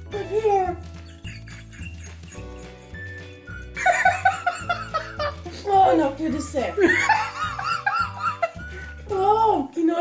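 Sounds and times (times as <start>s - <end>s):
man laughing loudly: 1.2s - 2.7s, 3.8s - 5.4s, 6.8s - 8.6s.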